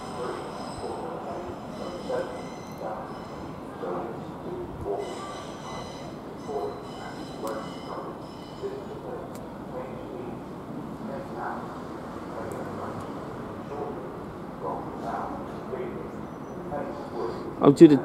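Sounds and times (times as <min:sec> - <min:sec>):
train rumbling along track: 0:00.0 - 0:18.0.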